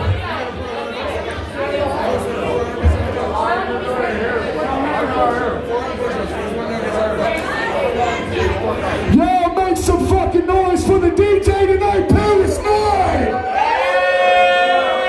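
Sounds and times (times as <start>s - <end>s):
crowd talking: 0.0s - 15.0s.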